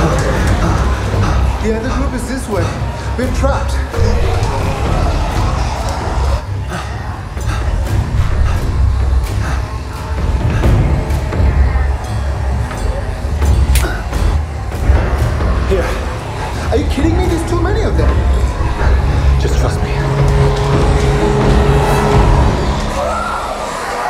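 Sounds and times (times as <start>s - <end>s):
film score with low bass: 0.0s - 23.8s.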